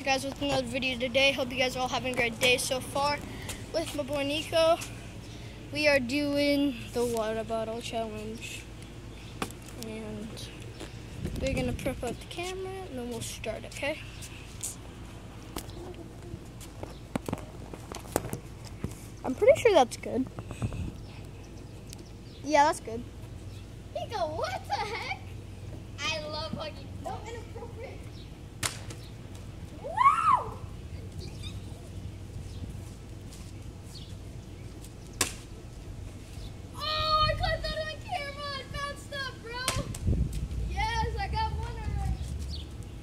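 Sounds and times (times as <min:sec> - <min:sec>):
low outdoor hum: 0:00.0 - 0:43.0
footsteps on asphalt: 0:08.3 - 0:19.5, 0:31.8 - 0:36.4.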